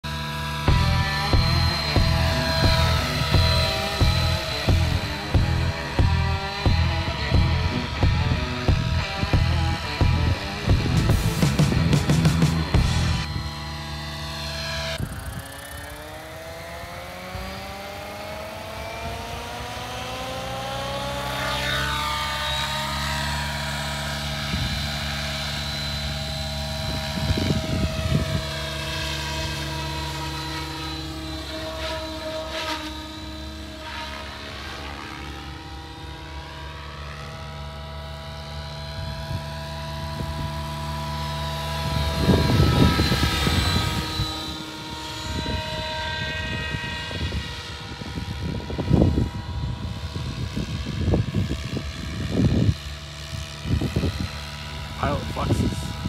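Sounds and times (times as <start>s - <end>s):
rc helicopter rotor whine: 0.0s - 56.0s
low rumble bursts: 0.6s - 13.6s.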